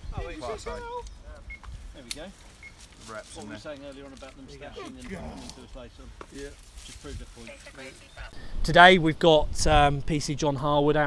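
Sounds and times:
murmured voices: 3.0 - 8.4.

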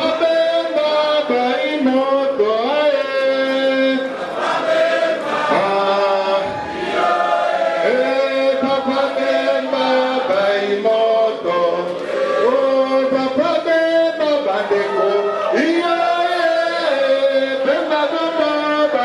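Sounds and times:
group of voices singing chant: 3.9 - 12.6.

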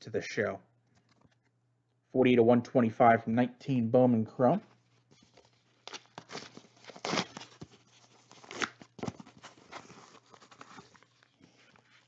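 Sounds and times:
wrapper crinkling and tearing: 5.2 - 12.0.

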